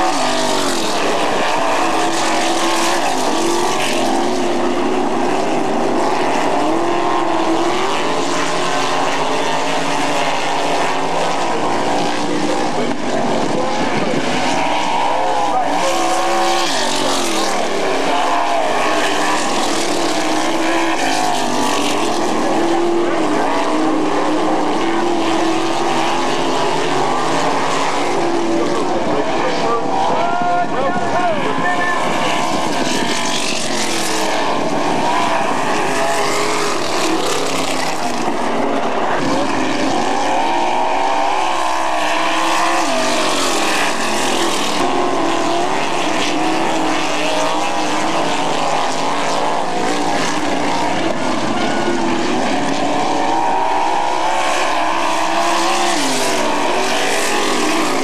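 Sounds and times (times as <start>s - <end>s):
race car engines at full throttle: 0.0s - 58.0s.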